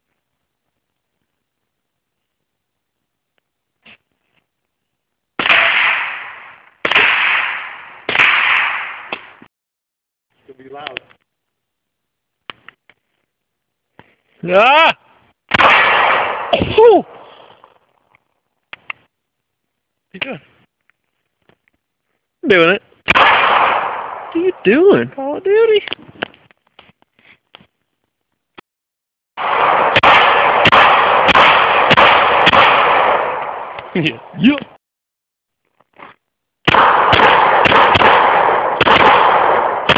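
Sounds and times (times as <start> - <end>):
rifle shots with echo: 5.4 - 9.4, 15.5 - 17.3, 23.1 - 24.9, 29.4 - 34.4, 36.6 - 39.9.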